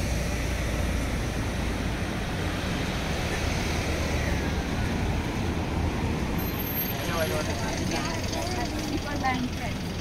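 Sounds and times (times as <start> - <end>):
road traffic rumble: 0.0 - 10.0
indistinct voices talking: 6.8 - 10.0.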